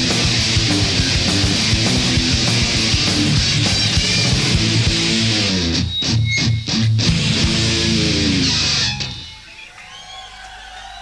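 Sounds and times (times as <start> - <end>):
live rock band playing: 0.0 - 9.7.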